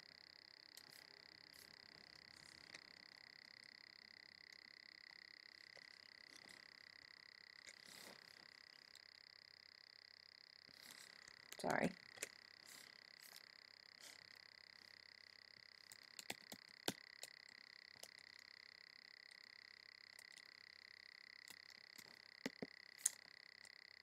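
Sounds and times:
faint high-pitched whine: 0.0 - 24.0.

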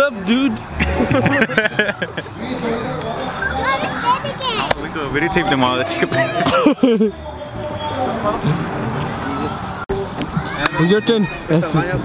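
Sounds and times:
children shouting and chattering: 0.0 - 12.0.

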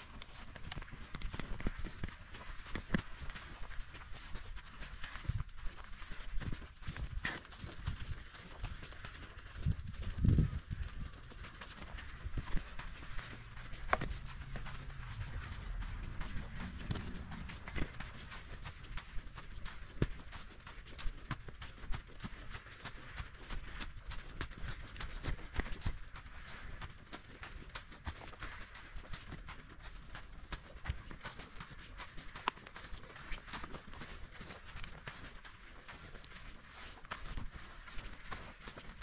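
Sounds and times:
bike clicking and rattling: 0.0 - 39.0
low rumble: 11.9 - 19.8.

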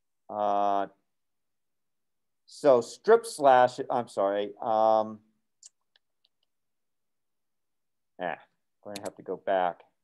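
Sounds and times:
faint computer clicks: 8.9 - 9.2.

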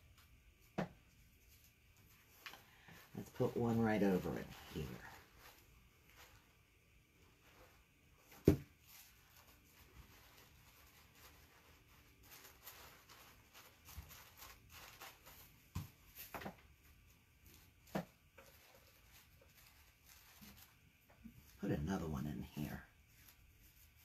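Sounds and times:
tissue paper rustling: 0.2 - 24.0.

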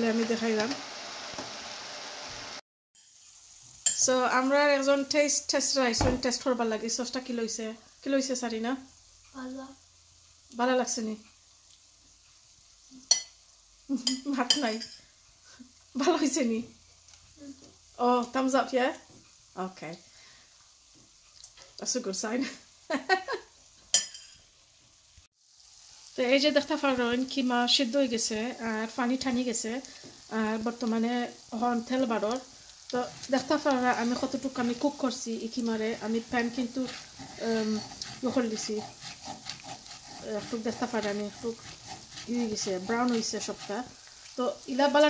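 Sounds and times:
meat sizzling in a frying pan: 0.0 - 45.0
metal spoon clinking on plate: 24.0 - 24.4
wooden spoon stirring: 31.8 - 45.0.

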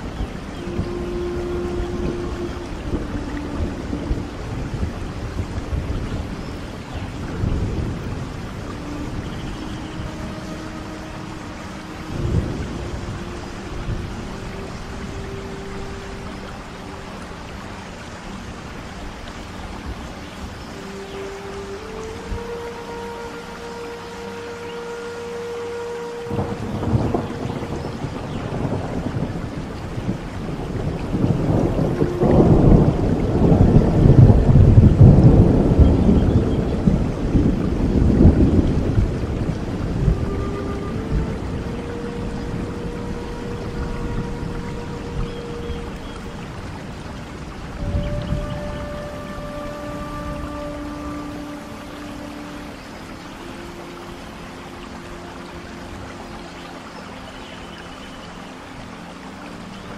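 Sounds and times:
thunder rumbling: 0.0 - 16.4, 26.3 - 51.9
soft flute melody: 0.0 - 59.9
steady rain: 0.0 - 59.9.

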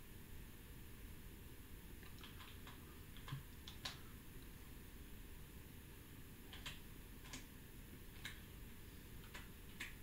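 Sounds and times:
keyboard key clicks: 6.5 - 7.5.

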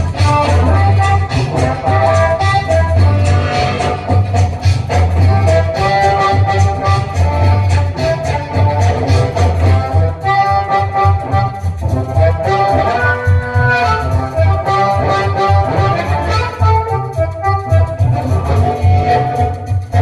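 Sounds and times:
amplified harmonica: 0.0 - 20.0
backing track with pulsing bass: 0.0 - 20.0.

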